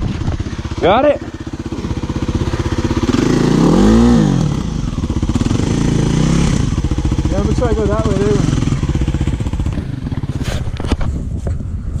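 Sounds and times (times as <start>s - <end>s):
dirt bike engine idling and revving: 0.0s - 12.0s.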